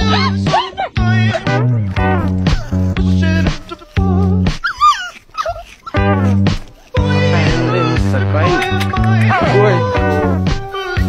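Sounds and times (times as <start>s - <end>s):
puppy whimpering: 0.0s - 7.3s, 8.6s - 11.0s
background music: 0.0s - 11.0s.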